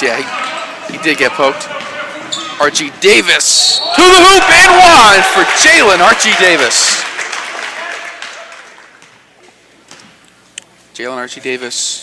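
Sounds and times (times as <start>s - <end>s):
crowd applause: 4.2s - 9.0s.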